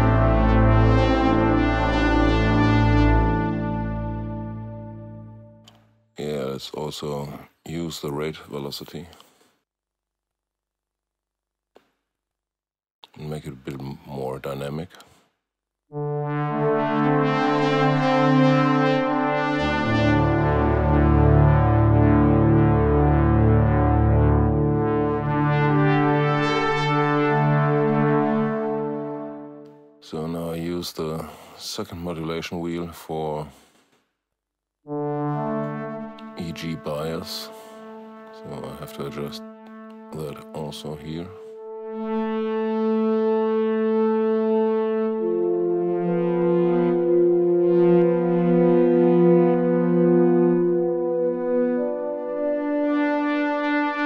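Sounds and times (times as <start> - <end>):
synthesizer brassy pad chords: 0.0 - 8.7, 15.9 - 33.5, 34.8 - 54.0.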